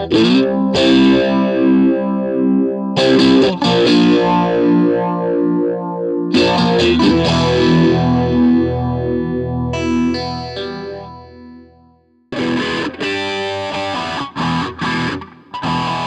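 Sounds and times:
phaser electric guitar chords: 0:00.0 - 0:16.0.

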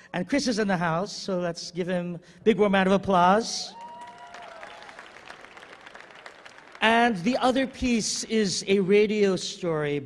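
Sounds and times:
audience applauding: 0:03.8 - 0:07.7.

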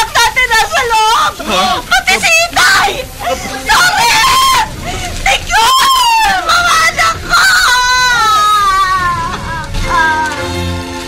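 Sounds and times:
woman screaming and wailing: 0:00.2 - 0:10.4.

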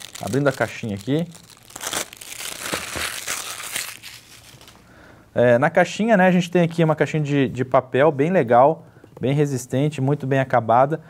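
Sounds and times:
plastic wrap crinkling: 0:00.0 - 0:04.9.

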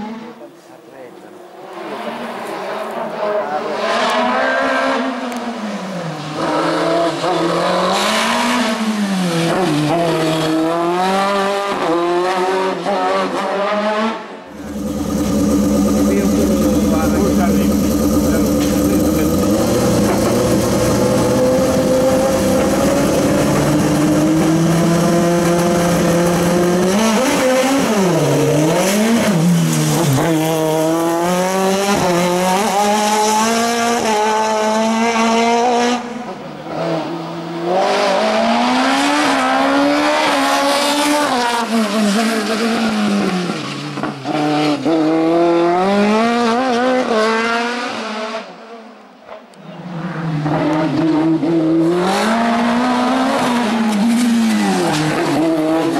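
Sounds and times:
race car engine revving: 0:01.7 - 0:05.5, 0:06.2 - 0:48.6, 0:50.0 - 0:55.9.

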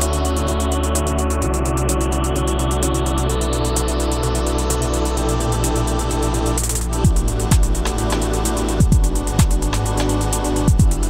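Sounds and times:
electronic music with steady beat: 0:00.0 - 0:11.0.

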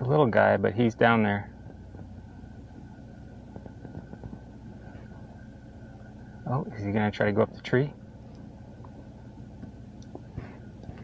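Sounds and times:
faint high-pitched hum: 0:00.0 - 0:11.0
truck engine idling: 0:00.0 - 0:11.0.

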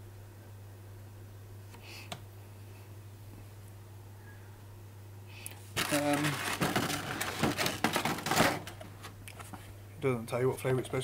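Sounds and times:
cardboard box rustling and scraping: 0:05.8 - 0:08.7.

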